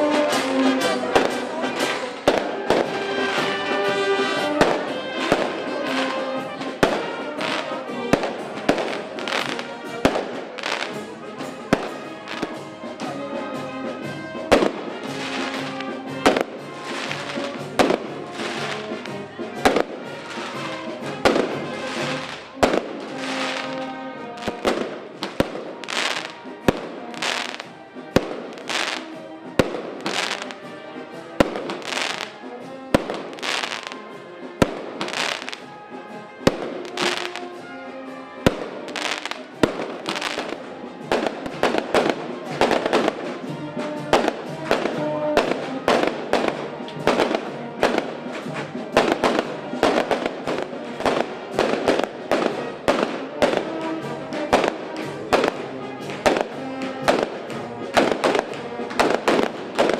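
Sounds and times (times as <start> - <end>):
fireworks banging and crackling: 0.0 - 59.9.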